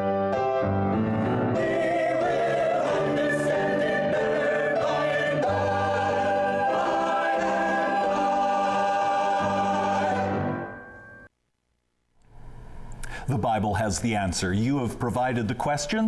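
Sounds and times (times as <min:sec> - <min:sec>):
piano accompaniment: 0:00.0 - 0:11.3
choir singing gospel song: 0:01.0 - 0:10.8.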